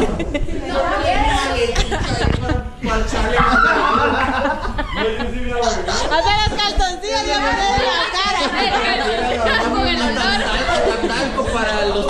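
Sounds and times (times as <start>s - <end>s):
people talking over one another: 0.5s - 12.0s.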